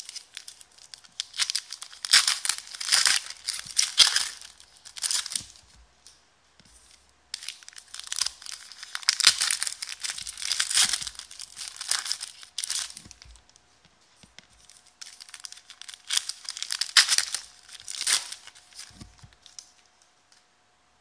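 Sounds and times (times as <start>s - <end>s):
foil pack tearing and crinkling: 0.0s - 5.6s, 7.4s - 13.4s, 14.6s - 19.6s.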